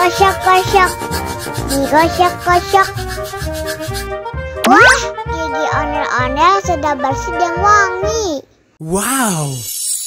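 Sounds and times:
toothbrush scrubbing: 0:00.0 - 0:04.2.

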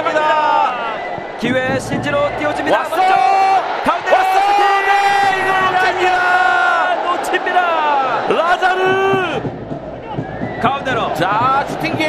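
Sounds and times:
stadium crowd yelling: 0:00.0 - 0:12.0.

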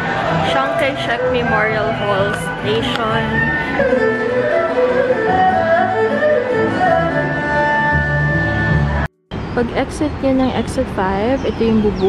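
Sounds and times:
low accompaniment: 0:00.0 - 0:10.8
erhu bowed melody: 0:00.9 - 0:08.4.

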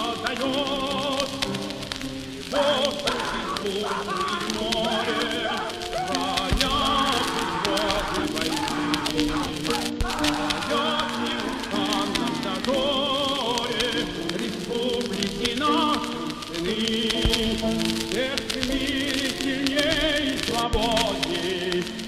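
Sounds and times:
voices singing with vibrato: 0:00.0 - 0:22.0.

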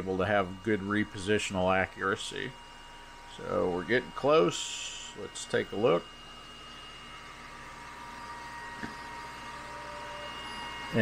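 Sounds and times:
stepper motor whine: 0:00.0 - 0:11.0.

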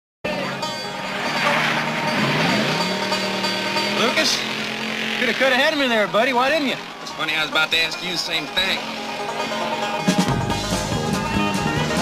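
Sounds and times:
car engine running: 0:00.3 - 0:12.0.

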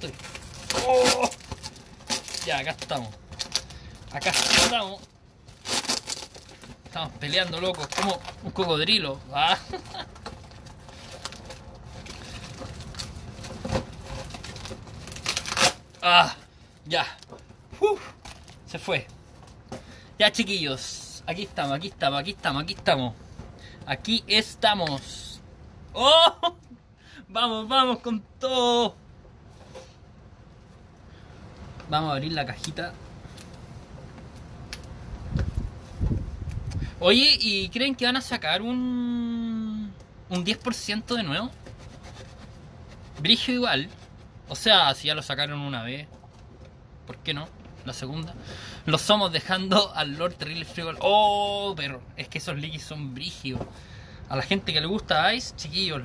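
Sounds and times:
cardboard box being opened: 0:00.0 - 0:16.0.

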